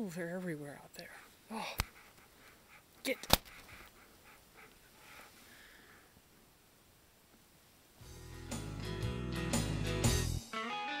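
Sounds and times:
faint soft breaths: 0.4s - 6.7s.

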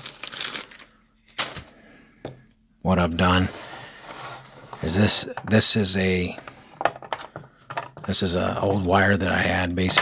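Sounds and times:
plastic bag crinkling: 0.0s - 1.7s.

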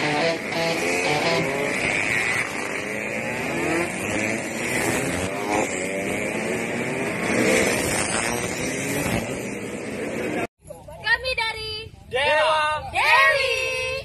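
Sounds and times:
motorcycles riding past: 0.0s - 10.5s.

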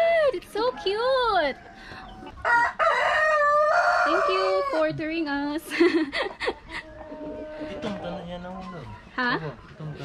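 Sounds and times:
rooster crowing: 1.4s - 5.0s.

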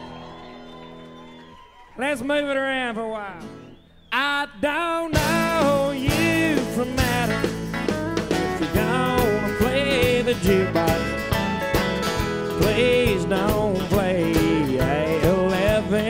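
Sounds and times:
country band playing: 0.0s - 16.0s.

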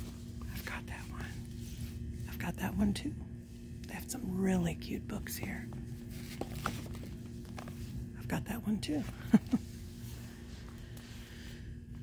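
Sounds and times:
steady low hum: 0.0s - 12.0s
person whispering: 0.5s - 1.4s.

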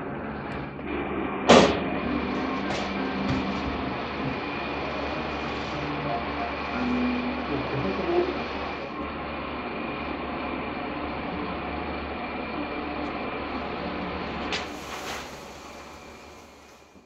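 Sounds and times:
room machinery hum: 0.0s - 17.0s
faint high tone: 1.9s - 8.4s.

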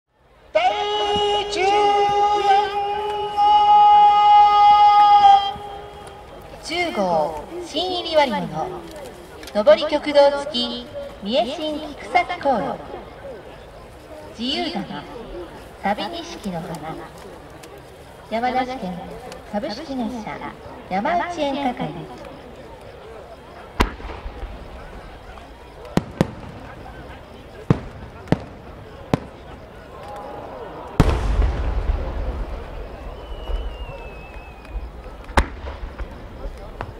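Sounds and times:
firework sharp cracks: 23.7s - 36.9s
deep firework boom: 23.8s - 25.2s, 26.0s - 29.7s, 30.9s - 36.9s.

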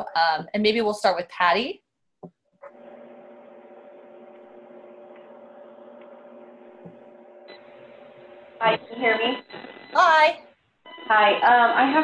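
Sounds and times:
telephone line hum and hiss: 2.6s - 12.0s.

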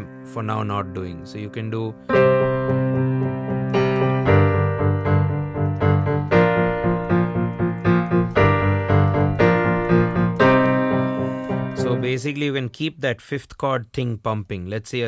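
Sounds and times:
digital piano power chords: 0.0s - 12.8s.

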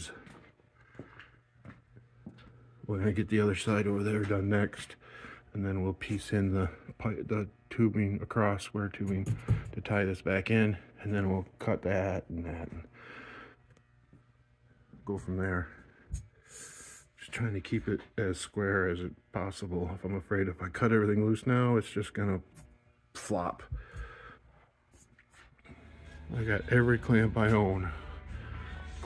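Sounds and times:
low steady hum: 0.0s - 29.0s
man speaking: 15.1s - 15.8s, 26.3s - 28.0s.

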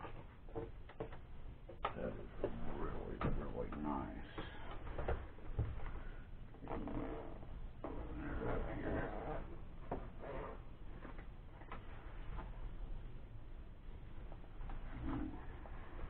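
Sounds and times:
zipper pulled open: 6.6s - 7.4s, 10.2s - 10.6s.

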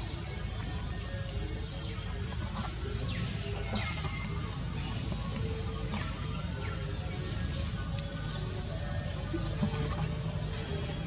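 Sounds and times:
continuous high hiss: 0.0s - 11.0s
faint ticks: 7.5s - 8.2s.

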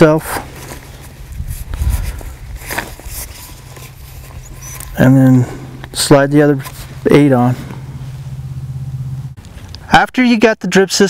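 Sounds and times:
low rumble: 6.7s - 9.9s.

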